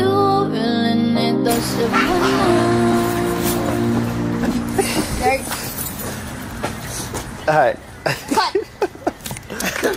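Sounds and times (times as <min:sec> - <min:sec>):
steady background noise: 0:01.4 - 0:09.9.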